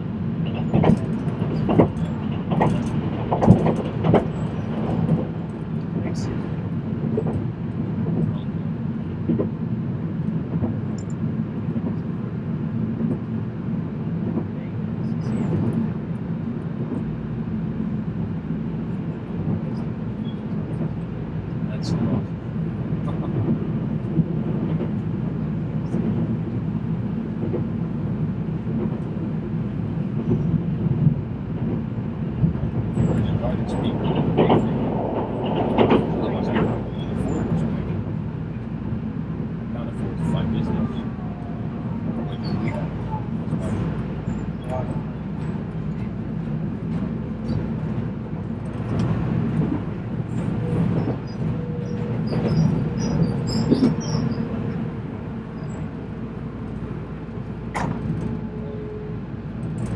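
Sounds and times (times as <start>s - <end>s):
train rumbling on rails: 0.0s - 59.9s.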